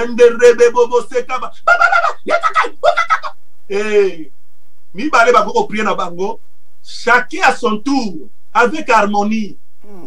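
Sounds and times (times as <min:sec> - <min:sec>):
man preaching: 0:00.0 - 0:04.3, 0:05.0 - 0:09.5.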